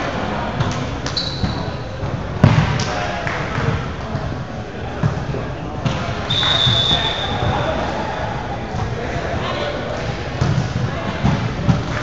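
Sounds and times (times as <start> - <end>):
voices in a hall: 0.0 - 12.0.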